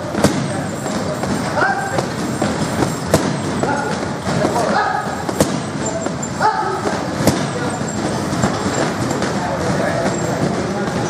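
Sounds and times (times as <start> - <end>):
punch on heavy bag: 0.0 - 11.0
voices: 0.0 - 11.0.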